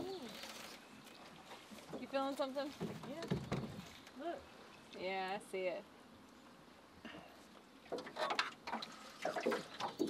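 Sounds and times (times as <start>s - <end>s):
water splashing and trickling: 7.7s - 10.0s.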